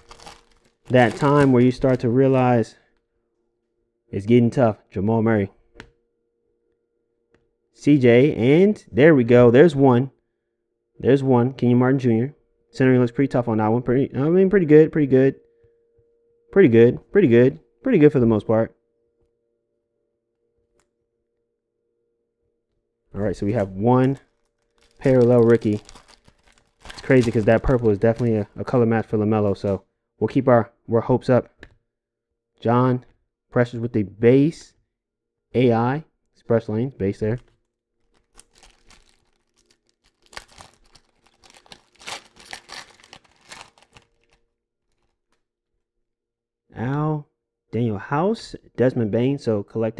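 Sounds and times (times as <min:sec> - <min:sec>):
foil wrapper tearing and crinkling: 0:00.0 - 0:02.2, 0:24.0 - 0:28.6, 0:38.0 - 0:45.4.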